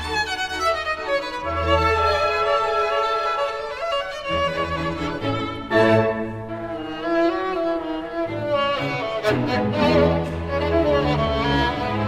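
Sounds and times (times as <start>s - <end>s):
low string accompaniment: 0.0s - 12.0s
solo violin melody: 0.0s - 12.0s.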